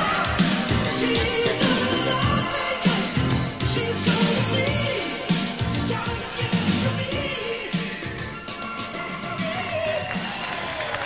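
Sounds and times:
live pop-rock band: 0.0 - 10.6.

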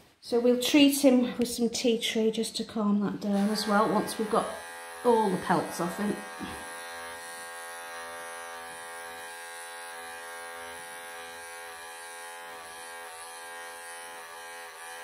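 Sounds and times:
pet clippers running: 3.4 - 15.0.

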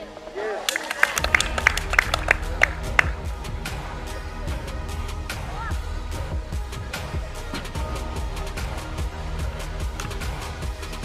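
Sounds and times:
music: 0.0 - 11.0
spectators clapping: 0.6 - 3.4.

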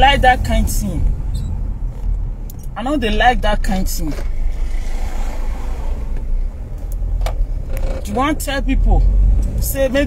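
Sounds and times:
road traffic rumble: 0.0 - 10.0
vehicle passing hiss: 4.5 - 6.1.

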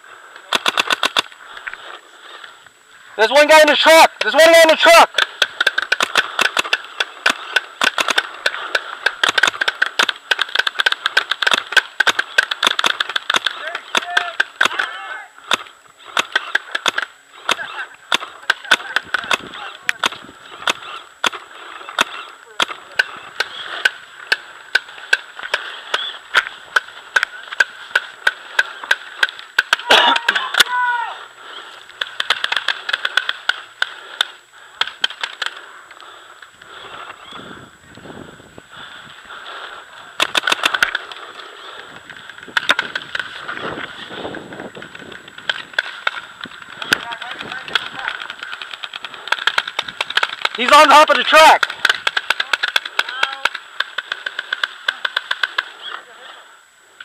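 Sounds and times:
paintball markers firing: 0.3 - 2.5, 3.3 - 37.2, 38.8 - 56.1
distant shouting: 13.5 - 33.2.

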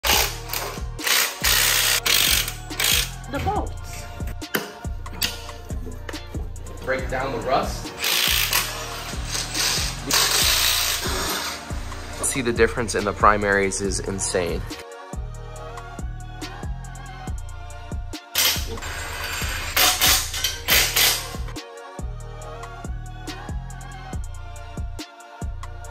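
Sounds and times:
music with heavy beat: 0.0 - 14.0, 14.6 - 25.9
ratchet wrench clicking: 0.1 - 3.2, 8.0 - 11.6, 18.4 - 21.4.

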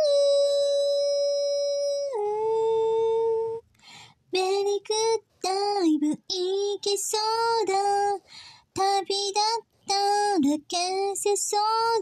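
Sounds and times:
woman singing unaccompanied: 0.0 - 3.7, 4.3 - 12.0.

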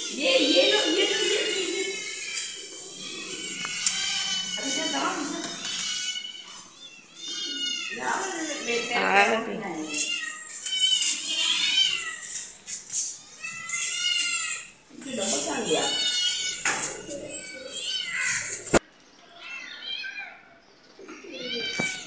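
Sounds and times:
kittens meowing: 0.0 - 22.0.

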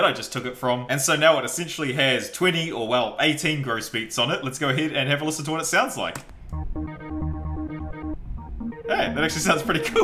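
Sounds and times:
low bass pulse: 6.5 - 10.0
muffled pitched synth notes: 6.5 - 10.0.

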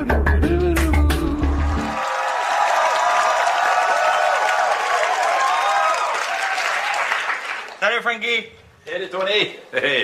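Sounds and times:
audience clapping: 0.8 - 8.2
cheering voices: 1.3 - 7.6.

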